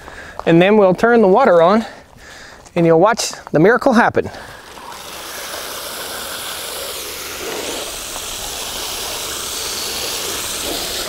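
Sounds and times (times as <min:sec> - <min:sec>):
hose spraying water: 0:04.4 - 0:11.0.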